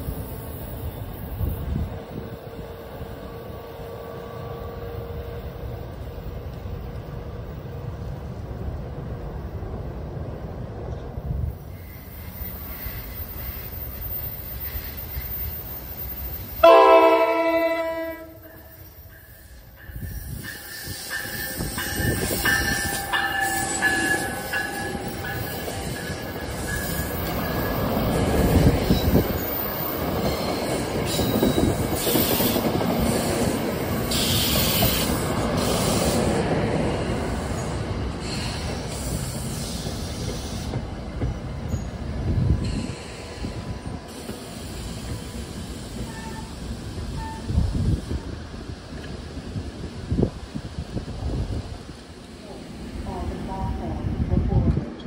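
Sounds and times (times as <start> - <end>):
train wheels on rails: 0.0 - 55.0
high wheel squeal: 11.7 - 16.6
train horn blast: 16.6 - 18.8, 46.0 - 46.6, 47.2 - 47.6.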